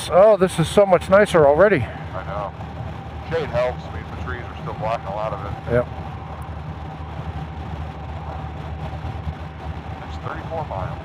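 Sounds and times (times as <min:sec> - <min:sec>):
motorcycle engine cruising: 0:00.0 - 0:11.0
wind and road noise: 0:00.8 - 0:11.0.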